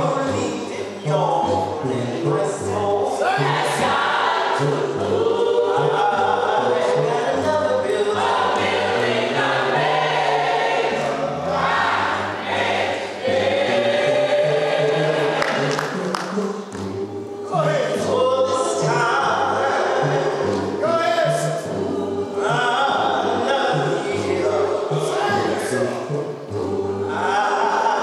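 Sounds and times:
gospel choir singing: 0:00.0 - 0:28.0.

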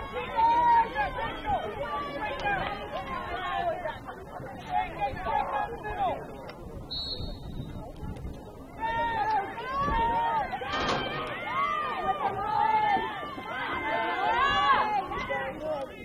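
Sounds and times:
players and spectators shouting: 0:00.0 - 0:06.4, 0:08.7 - 0:16.0.

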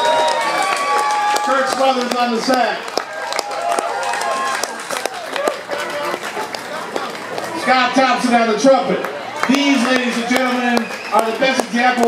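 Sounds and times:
audience clapping: 0:00.0 - 0:07.9, 0:08.9 - 0:12.0
crowd voices and shouts: 0:00.0 - 0:12.0.

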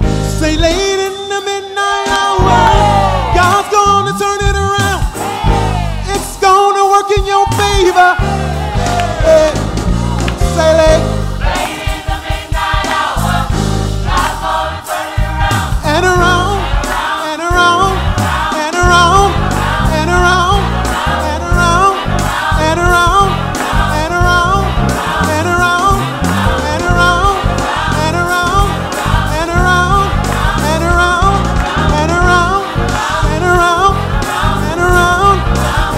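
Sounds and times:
band with bass line: 0:00.0 - 0:01.4, 0:02.1 - 0:35.9
gospel choir singing: 0:00.0 - 0:35.9
man lead singing on microphone: 0:00.4 - 0:09.7, 0:10.4 - 0:11.1, 0:15.2 - 0:35.9.

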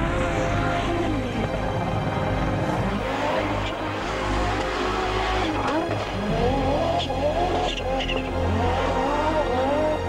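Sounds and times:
background music: 0:00.0 - 0:10.0
car engine revving hard: 0:00.0 - 0:10.0.

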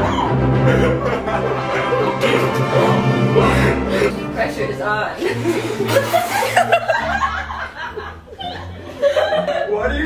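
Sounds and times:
people laughing: 0:00.0 - 0:04.6, 0:05.2 - 0:10.0.

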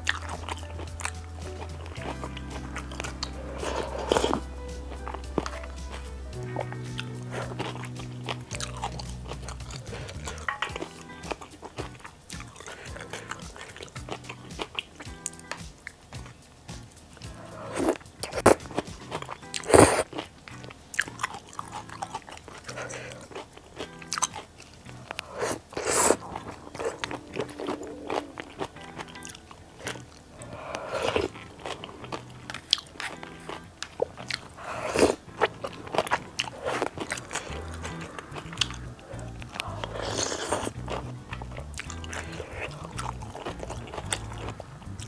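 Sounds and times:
mouth noises: 0:00.0 - 0:45.0
soft background music: 0:00.0 - 0:45.0
wet chewing: 0:00.0 - 0:45.0.

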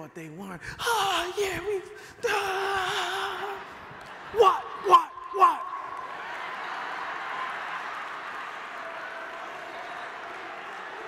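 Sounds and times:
crowd noise: 0:00.8 - 0:11.0
audience applauding: 0:02.3 - 0:11.0.

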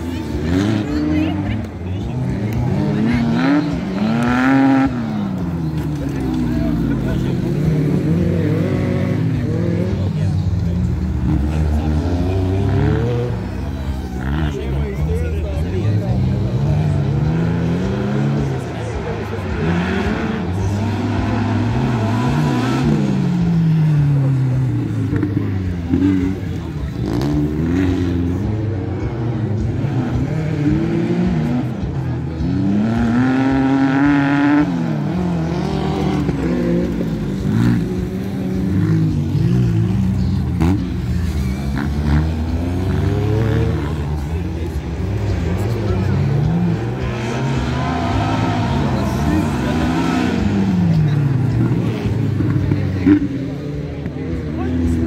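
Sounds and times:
racing buggy engines revving: 0:00.0 - 0:55.0.

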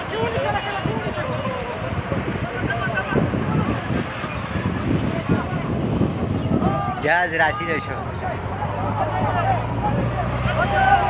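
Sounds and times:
men calling: 0:00.0 - 0:11.0.

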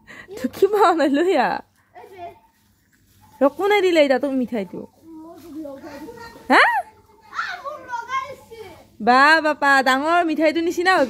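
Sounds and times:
child talking: 0:01.9 - 0:02.5, 0:05.0 - 0:09.0.

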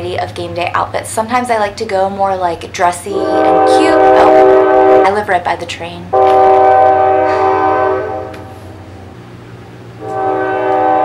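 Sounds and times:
train horn blasts: 0:03.1 - 0:05.4, 0:06.1 - 0:09.2, 0:10.0 - 0:11.0.

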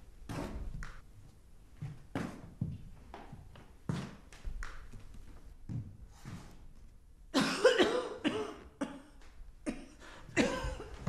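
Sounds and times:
woman coughing: 0:07.4 - 0:11.0.

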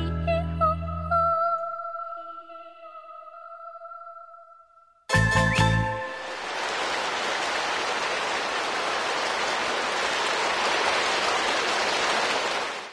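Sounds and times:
audience applauding: 0:05.2 - 0:12.9.

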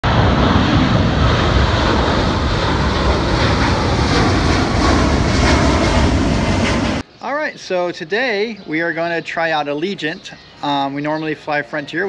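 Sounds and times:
jet engine roar: 0:00.0 - 0:07.1.

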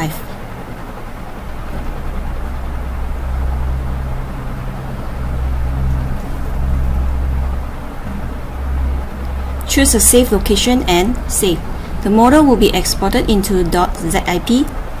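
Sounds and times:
noisy rumble: 0:00.0 - 0:15.0
steady low hum: 0:00.0 - 0:15.0.

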